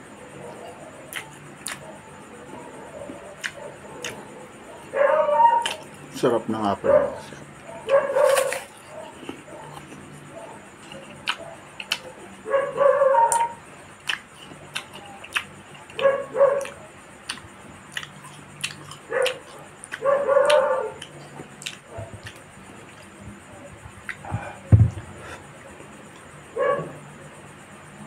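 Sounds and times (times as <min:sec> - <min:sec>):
fruit being chewed: 0:01.0 - 0:02.0, 0:02.6 - 0:04.4, 0:05.6 - 0:06.1, 0:07.3 - 0:12.2, 0:13.2 - 0:25.4.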